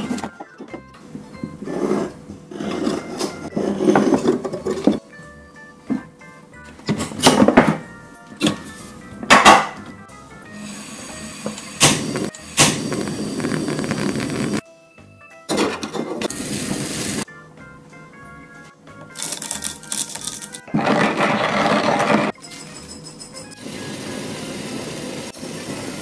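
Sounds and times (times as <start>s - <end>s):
background music: 0.0s - 26.0s
gas flame hissing: 1.0s - 4.8s, 5.9s - 14.6s, 16.1s - 17.3s, 23.4s - 26.0s
burner knob clicks: 11.5s - 14.3s.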